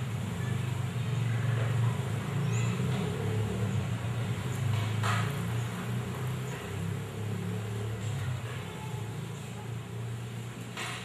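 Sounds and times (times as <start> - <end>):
low steady engine rumble: 0.0 - 11.0.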